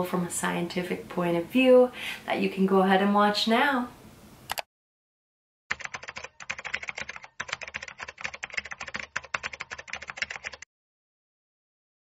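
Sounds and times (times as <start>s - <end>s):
keyboard key clicks: 4.5s - 4.7s.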